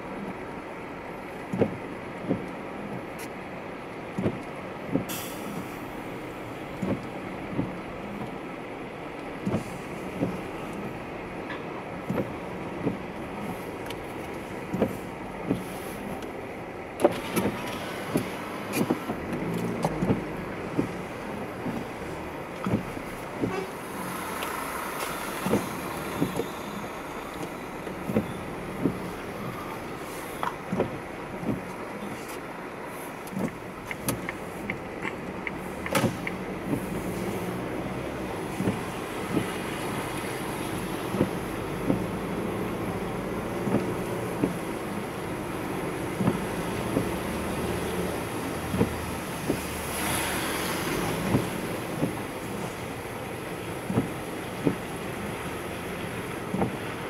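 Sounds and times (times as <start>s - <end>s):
car driving slowly on wet road: 0.0s - 57.0s
windshield wipers sweeping: 0.0s - 57.0s
sharp clicks and knocks: 17.0s - 21.0s, 22.5s - 23.6s, 33.2s - 36.9s.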